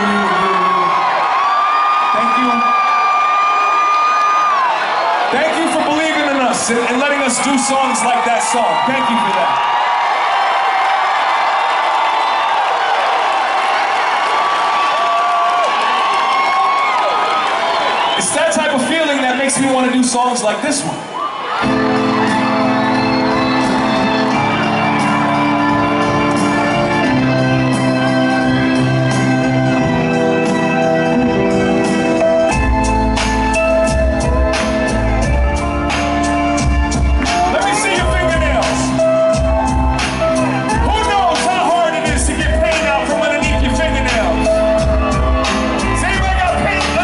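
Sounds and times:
crowd shouting: 0.0s - 18.2s
concert crowd cheering: 0.0s - 47.0s
hip-hop instrumental over pa: 21.7s - 47.0s.

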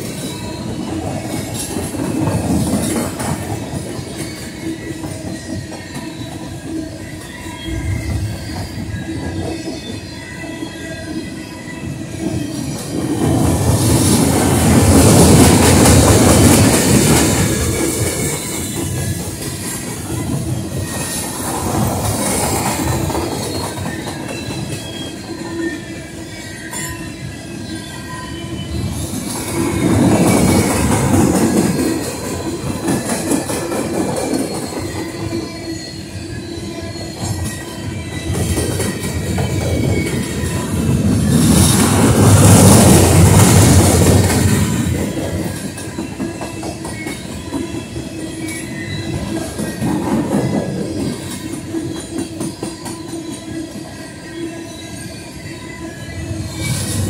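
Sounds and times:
train wheels clattering over rail joints: 12.2s - 25.3s
faint wheel squeal: 23.3s - 30.7s, 34.2s - 41.8s, 44.5s - 57.0s.

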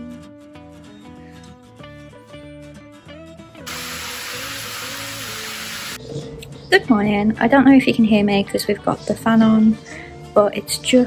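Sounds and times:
guitar music: 3.4s - 6.0s
water spraying from shower head: 3.7s - 6.0s.

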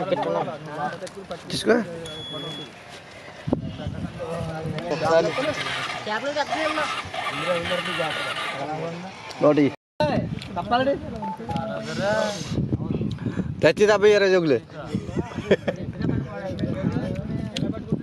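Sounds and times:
short high beep: 2.0s - 2.7s.

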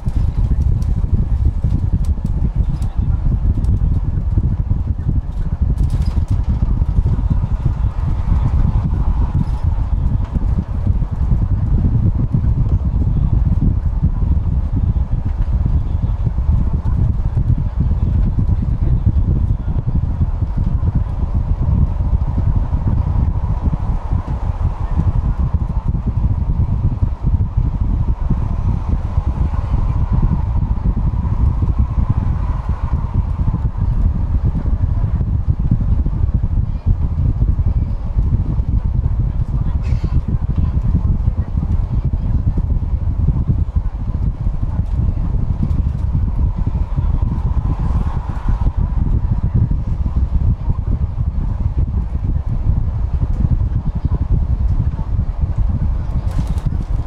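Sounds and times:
bus engine and tyre rumble: 0.0s - 57.0s.

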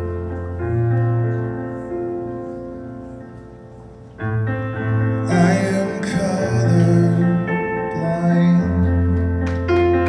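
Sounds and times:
slow piano chords: 0.0s - 10.0s
man singing: 5.2s - 9.4s.

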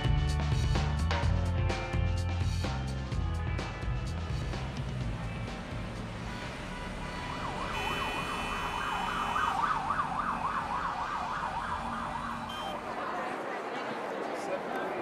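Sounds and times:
city traffic noise: 3.1s - 15.0s
emergency siren wailing: 6.2s - 13.0s.

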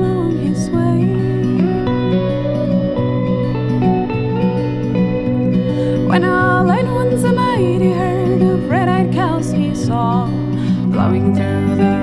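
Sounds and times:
acoustic guitar strumming chords: 0.0s - 12.0s
bending high melody line: 0.0s - 12.0s
electric guitar lead line: 0.0s - 12.0s.

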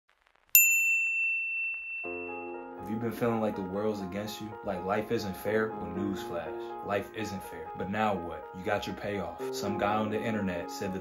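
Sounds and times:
small bell ding: 0.6s - 2.6s.

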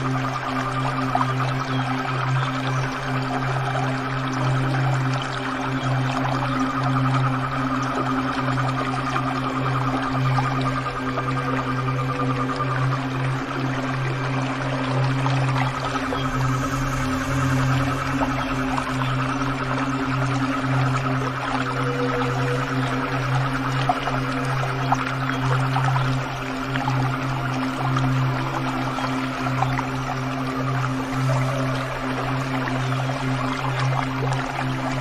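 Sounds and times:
ambient drone music: 0.0s - 35.0s
flowing water rushing: 0.0s - 35.0s.

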